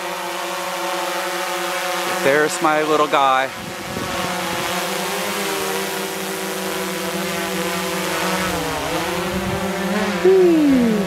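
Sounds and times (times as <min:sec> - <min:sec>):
drone propellers whining: 0:05.3 - 0:11.0.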